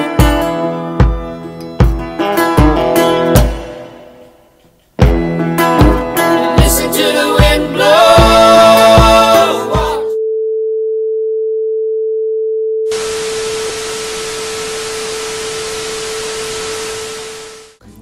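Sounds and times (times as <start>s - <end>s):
tv static hiss: 12.9s - 17.8s.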